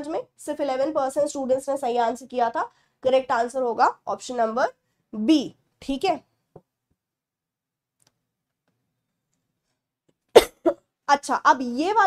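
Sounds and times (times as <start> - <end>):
woman coughing: 10.4 - 10.8.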